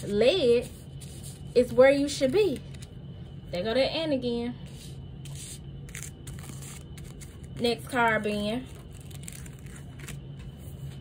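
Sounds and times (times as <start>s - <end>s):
steady low hum: 0.0s - 11.0s
cards rustling and scraping: 4.8s - 11.0s.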